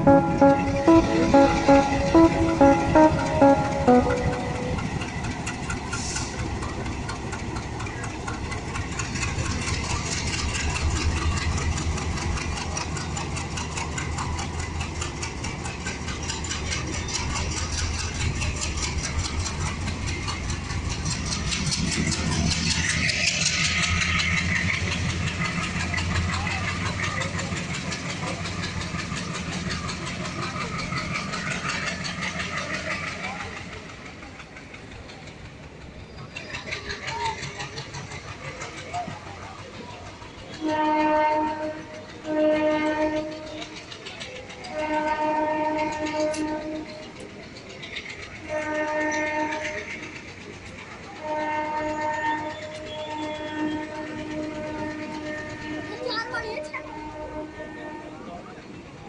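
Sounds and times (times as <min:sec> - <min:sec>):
diesel locomotive engine hum: 0:00.0 - 0:59.0
train wheels clattering: 0:04.8 - 0:58.0.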